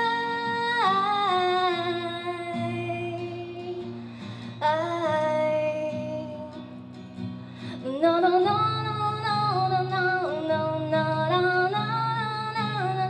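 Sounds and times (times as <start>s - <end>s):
acoustic guitar: 0.0s - 13.0s
woman singing: 0.0s - 13.0s.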